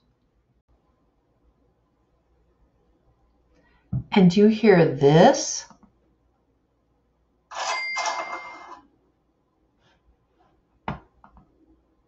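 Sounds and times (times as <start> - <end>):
cash register sound effect: 7.5 - 8.9.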